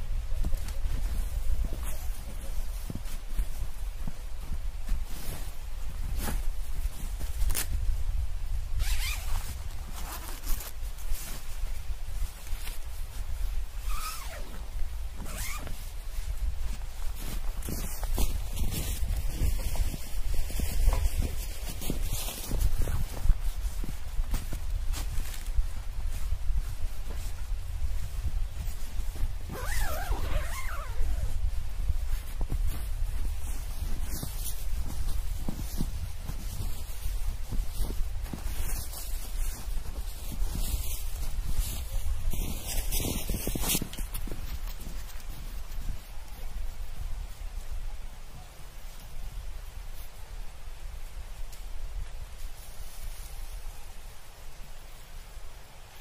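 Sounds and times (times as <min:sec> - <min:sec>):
tent fabric rustling: 0:00.2 - 0:08.0, 0:08.6 - 0:47.4
tent zipper: 0:08.8 - 0:10.7, 0:13.8 - 0:14.6, 0:15.2 - 0:15.8, 0:29.4 - 0:31.4.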